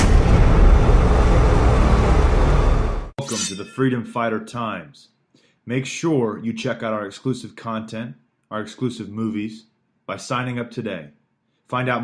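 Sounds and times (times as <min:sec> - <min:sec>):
deep dense rumble: 0:00.0 - 0:03.1
sharp hit: 0:00.0 - 0:03.9.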